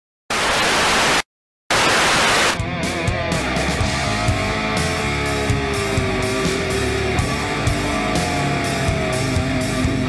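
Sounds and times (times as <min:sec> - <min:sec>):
hissing static bursts: 0:00.3 - 0:02.6.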